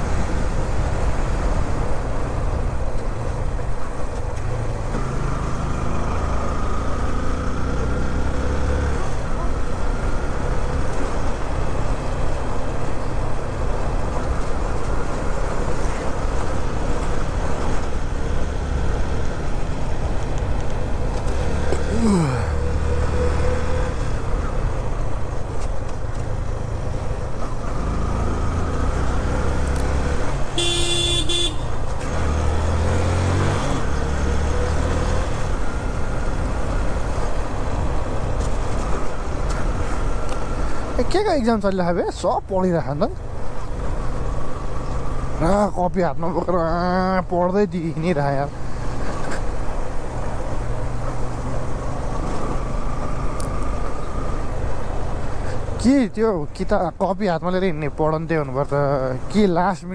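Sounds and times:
motorcycle engine and road noise: 0.0 - 59.9
vehicle horn honking: 30.6 - 31.8.

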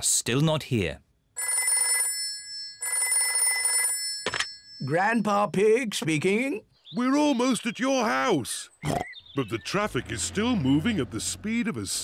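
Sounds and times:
old telephone ringing: 1.4 - 5.5.

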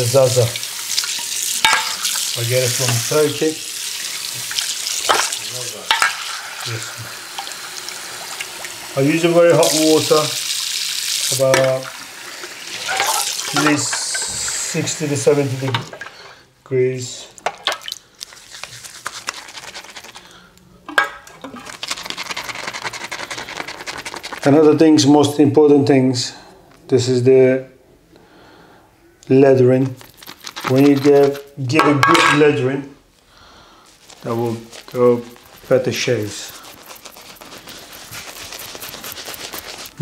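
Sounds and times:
shaving brush swishing in soap bowl: 9.0 - 10.4, 12.7 - 15.7, 18.4 - 20.2, 21.7 - 24.6, 33.9 - 40.0.

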